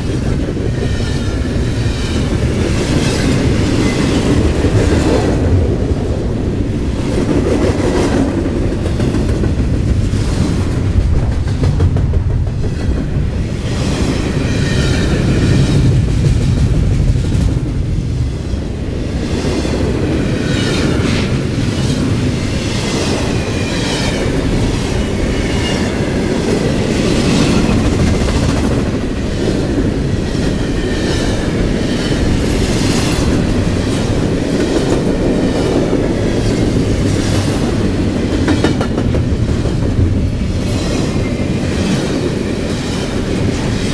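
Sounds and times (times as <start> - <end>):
rail clicks: 0.0 - 43.9
train wheels rumbling on rail: 0.0 - 43.9.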